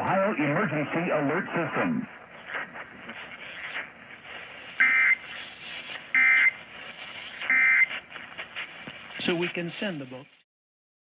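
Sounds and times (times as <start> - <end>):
radio background hiss: 0.0 - 10.4.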